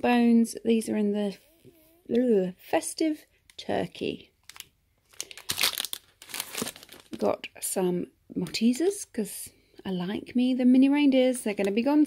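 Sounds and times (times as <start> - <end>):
plastic packets crinkling: 4.4 - 7.4.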